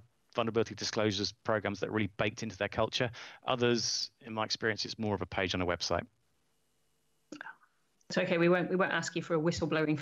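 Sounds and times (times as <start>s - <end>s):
soft vocal murmur: 0.4s - 6.0s.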